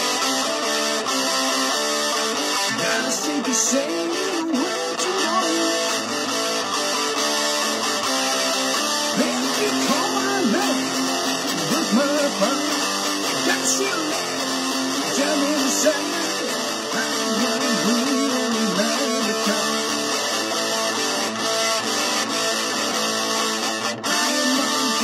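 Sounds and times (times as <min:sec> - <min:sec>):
electric guitar riffing: 0:00.0 - 0:25.0.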